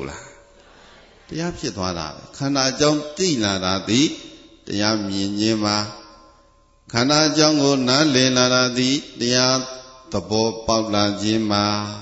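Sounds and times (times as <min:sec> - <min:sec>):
man chanting: 0:00.0 - 0:00.6, 0:01.2 - 0:12.0.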